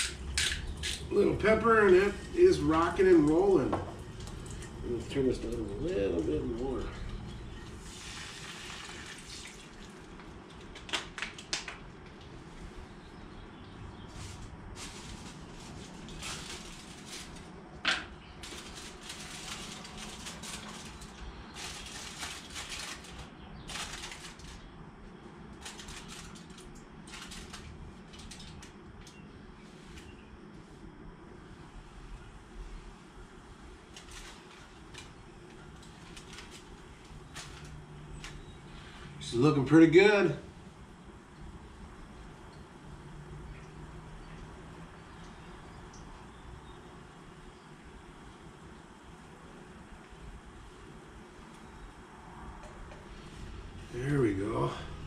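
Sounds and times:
aluminium foil crinkling: 0.0 - 11.8, 14.1 - 30.2, 33.8 - 39.0
water sizzling in hot frying pan: 7.7 - 10.1.

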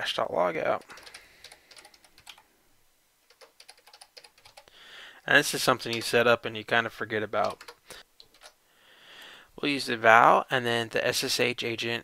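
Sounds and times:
typing on computer keyboard: 0.8 - 2.4, 3.3 - 4.7, 7.4 - 8.6.

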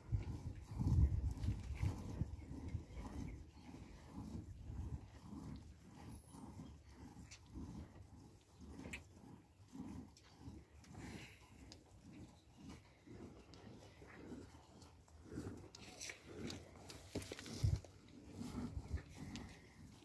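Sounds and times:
cow lowing: 0.0 - 20.0.

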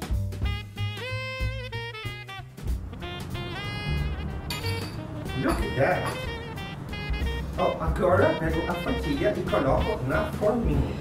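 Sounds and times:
upbeat instrumental music: 0.0 - 11.0.

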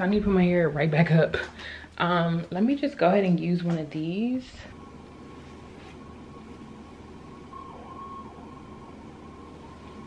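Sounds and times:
low hum and hiss: 0.0 - 10.0
faint high whine: 4.1 - 10.0.

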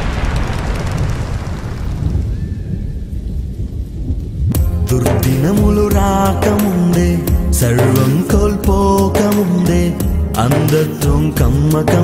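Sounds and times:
thunder rumbling: 0.0 - 8.9
music: 4.6 - 12.0.

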